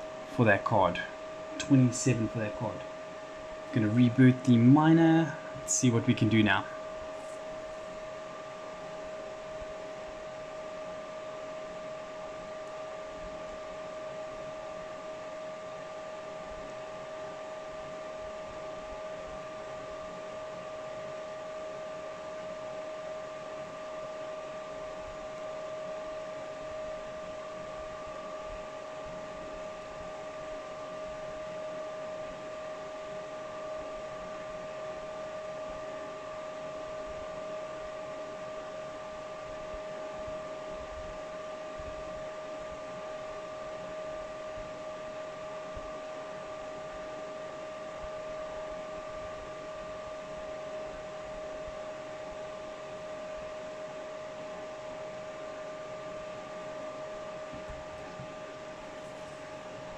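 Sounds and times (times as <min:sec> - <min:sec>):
computer fans whirring: 0:00.0 - 0:59.9
constant whine: 0:00.0 - 0:59.9.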